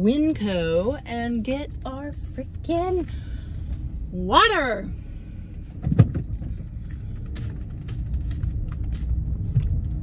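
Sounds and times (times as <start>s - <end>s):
car engine running: 0.0s - 10.0s
short thump: 5.8s - 6.6s.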